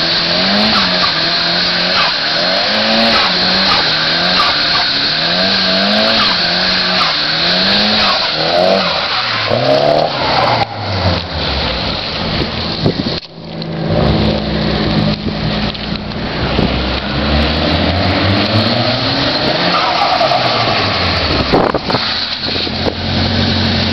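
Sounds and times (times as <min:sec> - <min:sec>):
car engine at high revs: 0:00.0 - 0:23.9
tyres squealing: 0:00.1 - 0:11.9, 0:18.6 - 0:22.6.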